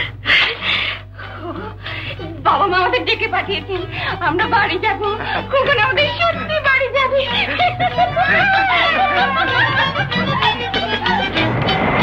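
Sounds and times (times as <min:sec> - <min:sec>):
low film soundtrack hum: 0:00.0 - 0:12.0.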